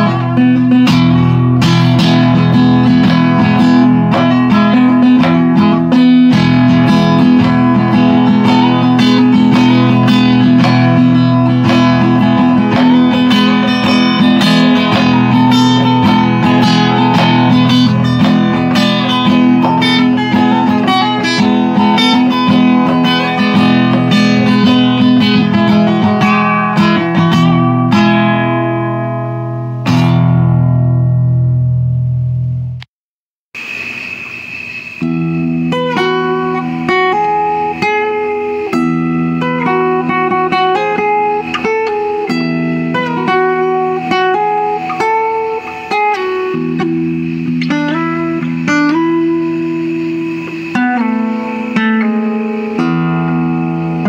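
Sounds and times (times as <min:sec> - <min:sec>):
fingerpicked acoustic guitar: 0:00.0 - 0:32.9, 0:35.0 - 0:54.0.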